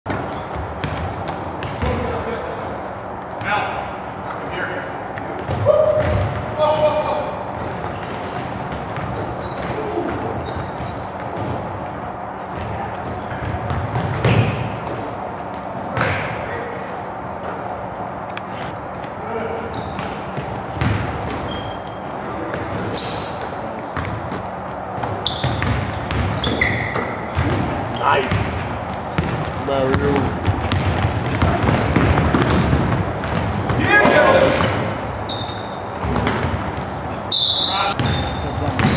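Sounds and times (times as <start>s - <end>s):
basketball bouncing on hardwood floor: 0.5s - 2.0s, 5.4s - 6.5s, 7.6s - 11.6s, 13.4s - 15.0s, 20.0s - 21.4s, 25.0s - 33.9s, 36.0s - 36.9s, 38.0s - 38.9s
sneaker squeaks: 3.2s - 11.7s, 12.5s - 29.4s, 30.2s - 38.9s
players' indistinct voices: 26.2s - 32.3s, 32.9s - 38.9s.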